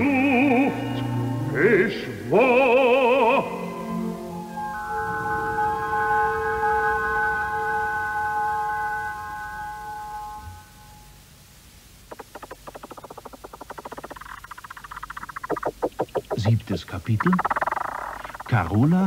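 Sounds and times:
orchestral chord: 3.2 - 11.2
rapid even pulsing: 12.0 - 19.0.

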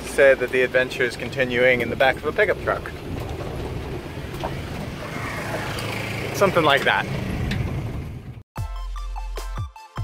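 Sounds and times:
road and wind noise: 0.0 - 8.4
truck engine hum: 0.0 - 8.4.

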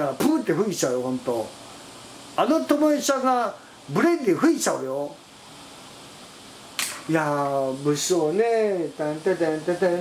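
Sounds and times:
man speaking: 0.0 - 1.6, 2.4 - 5.2, 7.0 - 10.0.

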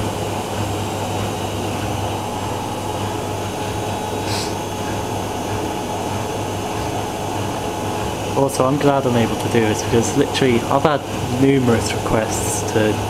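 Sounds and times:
washing machine spinning: 0.0 - 13.0.

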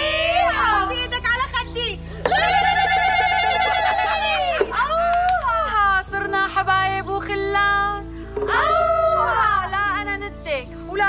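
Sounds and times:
women ululating: 2.3 - 5.7.

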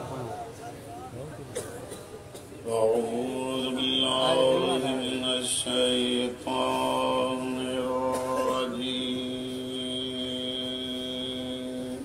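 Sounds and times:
man chanting a held note: 2.6 - 12.0.

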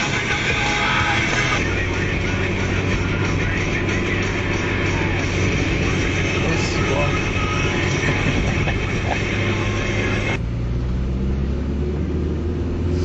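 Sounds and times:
engine and road drone: 0.0 - 13.0.

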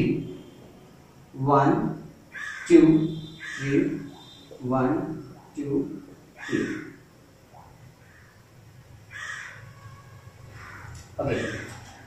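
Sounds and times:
crow cawing: 2.3 - 4.5, 6.4 - 7.1, 8.0 - 8.4, 9.1 - 12.0.

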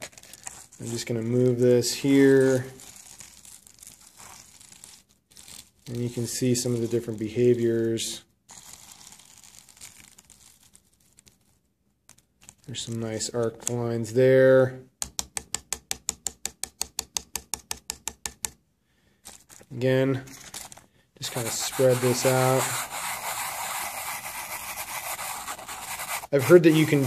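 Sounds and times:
plastic mat rustling and crinkling: 0.0 - 1.2, 2.1 - 7.0, 19.2 - 23.4
rapid tapping on board: 15.0 - 18.6.

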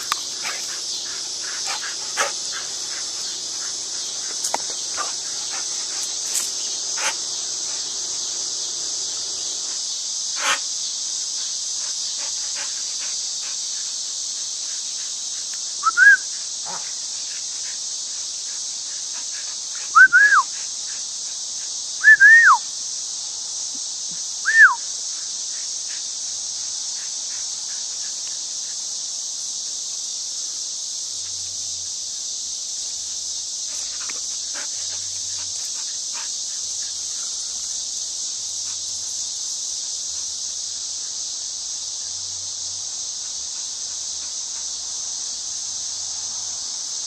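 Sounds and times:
high insect drone: 0.0 - 47.0.

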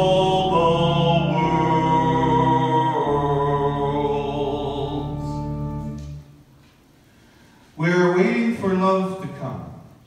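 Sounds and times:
congregation singing a hymn: 0.0 - 6.2
organ accompaniment: 0.0 - 6.5.

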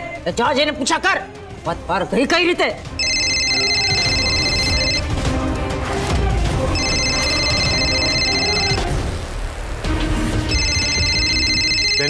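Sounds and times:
phone ringing: 3.0 - 5.1, 6.8 - 8.9, 10.5 - 12.0.

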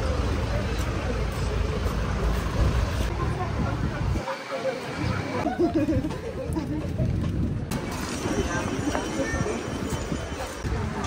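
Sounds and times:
vehicles passing close by: 0.0 - 6.4
low rumble of traffic: 0.0 - 11.0.

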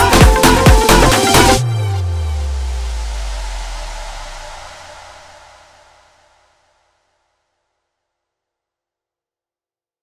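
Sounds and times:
heavy bass: 0.0 - 6.1.

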